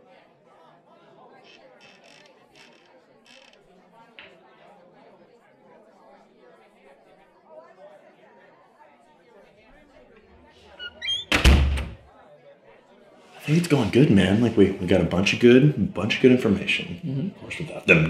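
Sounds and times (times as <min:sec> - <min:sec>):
murmur of voices: 0:00.0 - 0:18.0
loud heavy thud: 0:11.3 - 0:12.0.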